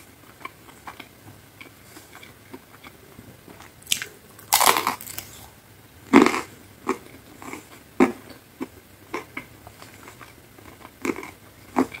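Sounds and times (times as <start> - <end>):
crunching pizza crust: 0.4 - 5.5.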